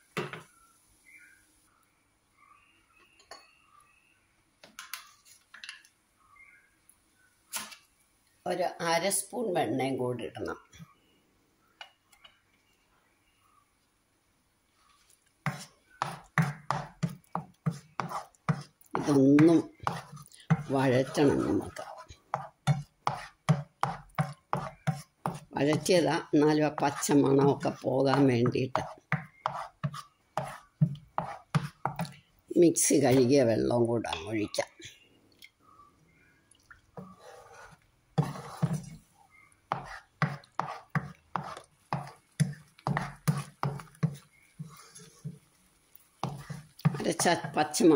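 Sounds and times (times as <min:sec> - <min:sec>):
wooden spatula scraping a pan: 0:14.8 - 0:32.1, 0:37.0 - 0:39.1, 0:39.7 - 0:47.9.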